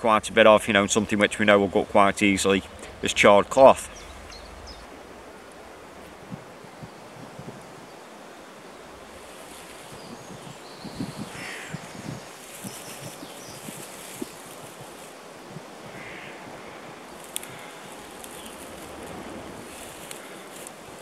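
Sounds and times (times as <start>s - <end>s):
dry grass rustling: 0.4s - 21.0s
wind on microphone: 2.6s - 21.0s.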